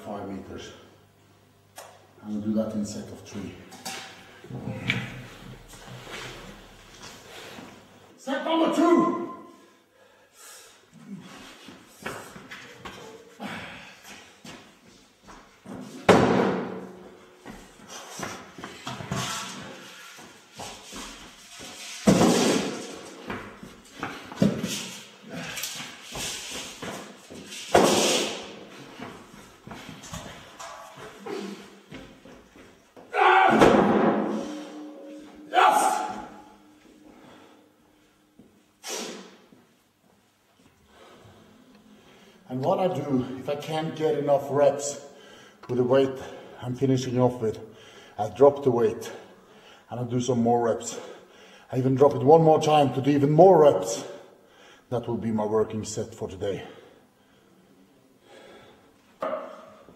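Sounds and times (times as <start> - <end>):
man breathing hard: 9.6 - 11.4, 13.1 - 14.4, 45.1 - 45.6, 47.7 - 48.2, 49.2 - 49.9, 51.0 - 51.7, 54.3 - 54.9, 56.8 - 59.1
man grunting: 35.4 - 36.4.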